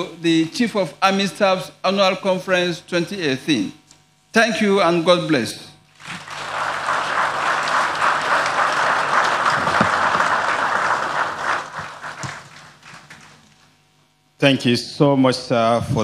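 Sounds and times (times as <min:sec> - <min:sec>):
audience applauding: 0:06.0 - 0:13.6.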